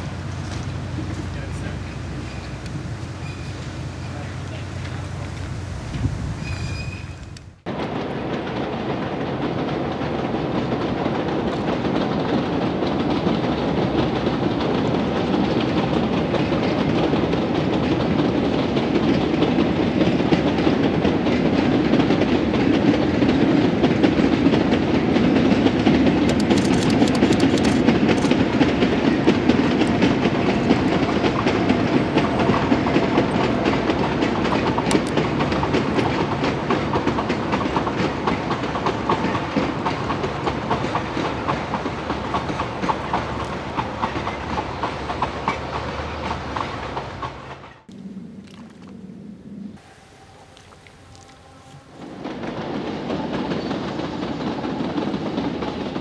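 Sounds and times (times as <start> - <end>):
wheels clattering over rail joints: 0.0 - 47.9
diesel locomotive engine: 0.0 - 56.0.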